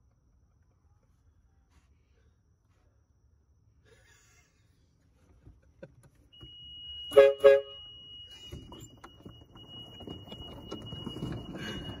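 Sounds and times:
air horn two-note honks: 7.0 - 7.9.

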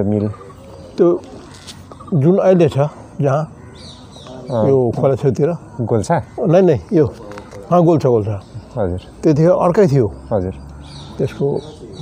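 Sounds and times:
man speaking: 0.0 - 1.4, 2.1 - 3.6, 4.3 - 12.0
faint bird calls: 0.0 - 12.0.

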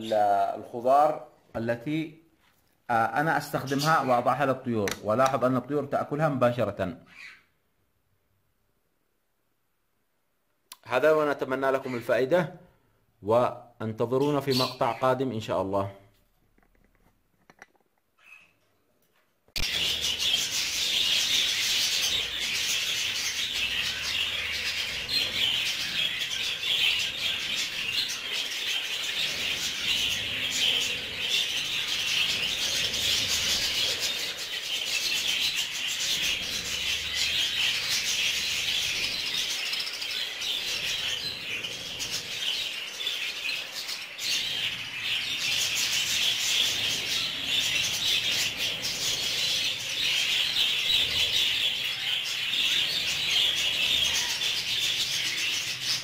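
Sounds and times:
budgerigars chattering and warbling: 14.1 - 15.3, 19.6 - 56.0.

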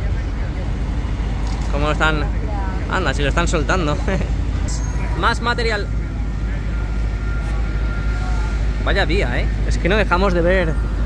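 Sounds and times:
crane truck driving by: 0.0 - 11.0
low rumble of road traffic: 0.0 - 11.0.

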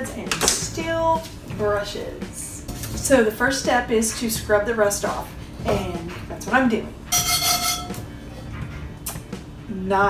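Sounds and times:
steel wool scrubbing iron pan: 0.7 - 8.8
pan ringing metallic tone: 7.1 - 8.8.

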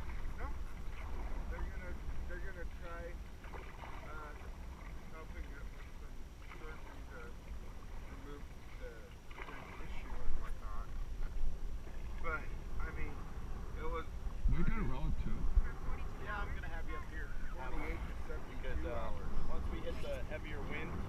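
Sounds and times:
low wind rumble on microphone: 0.0 - 8.9, 9.8 - 21.0
paddles splashing in water: 0.0 - 21.0
people talking indistinctly: 0.2 - 21.0.

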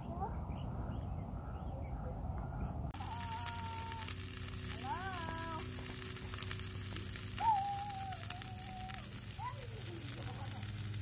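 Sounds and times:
meat sizzling in a frying pan: 3.0 - 11.0.

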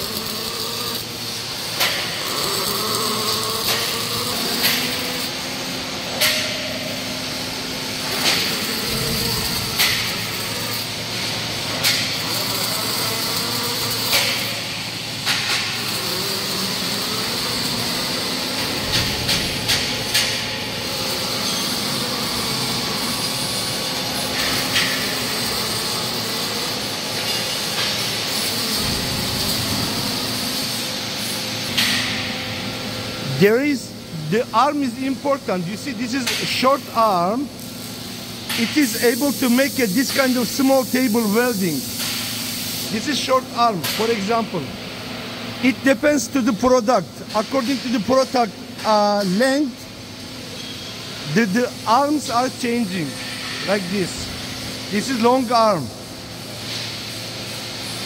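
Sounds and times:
low machine hum: 0.0 - 41.9
welding arc hissing and crackling: 0.0 - 58.0.

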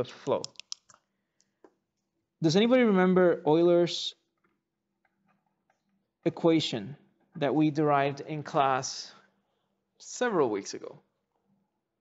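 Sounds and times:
pen ticking against paper: 0.3 - 1.0.

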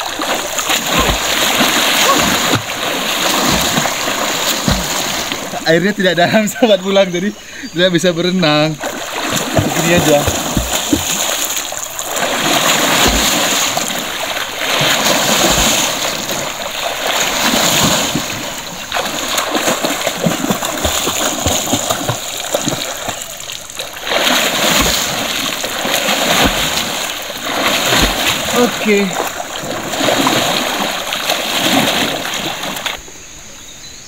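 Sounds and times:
swimmer splashing in water: 0.0 - 5.7, 8.8 - 33.0.

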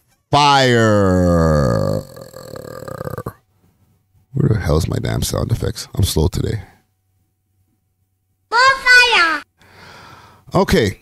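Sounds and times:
man's low croaking voice: 0.6 - 3.4.

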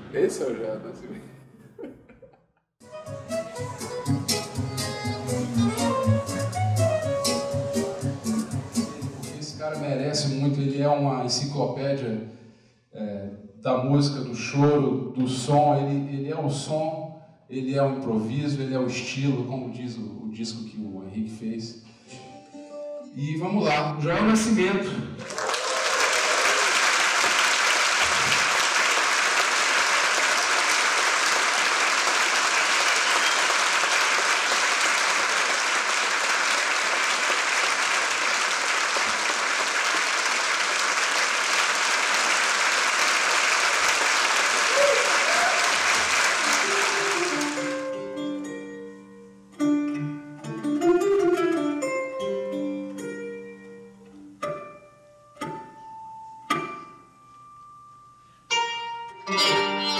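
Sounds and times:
audience applauding: 25.2 - 48.0
plucked string instrument notes: 46.6 - 57.5, 58.5 - 59.9.

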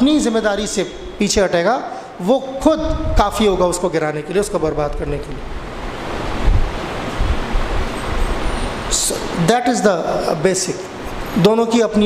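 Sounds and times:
air blowing across microphone: 0.2 - 9.5, 10.1 - 11.5.

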